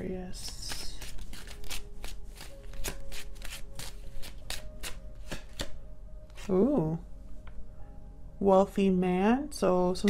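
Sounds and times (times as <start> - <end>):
cards being shuffled: 0.4 - 6.6.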